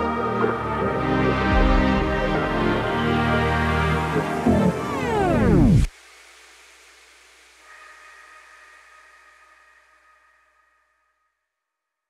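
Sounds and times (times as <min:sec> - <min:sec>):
loudspeaker hiss and hum: 0:00.0 - 0:09.8.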